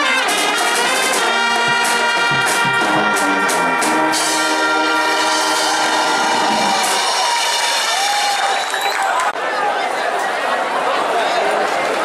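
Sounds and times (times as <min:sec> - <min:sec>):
marching band brass playing: 0:00.0 - 0:08.2
crowd voices: 0:00.0 - 0:12.0
sharp drum hits: 0:01.0 - 0:07.6.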